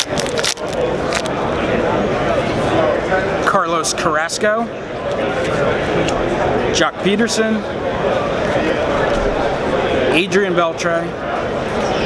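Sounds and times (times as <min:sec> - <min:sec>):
card pack wrapper tearing: 0:00.0 - 0:01.3
babble of crowded hall: 0:00.0 - 0:12.0.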